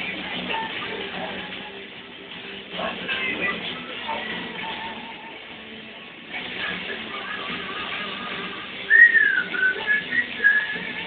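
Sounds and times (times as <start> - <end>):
person whistling: 8.9 - 11.0.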